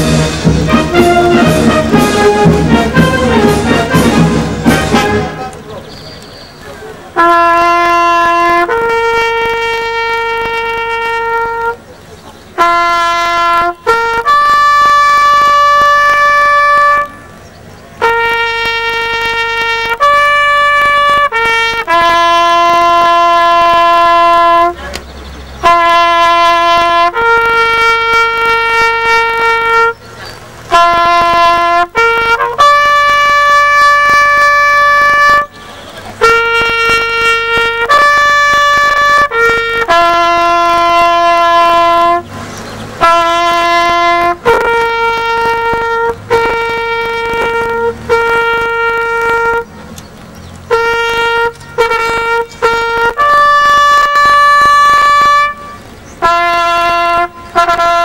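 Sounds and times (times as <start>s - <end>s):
solo trumpet bugle call: 0.0s - 5.6s, 7.2s - 11.9s, 12.5s - 17.4s, 18.0s - 24.9s, 25.6s - 50.0s, 50.7s - 58.0s.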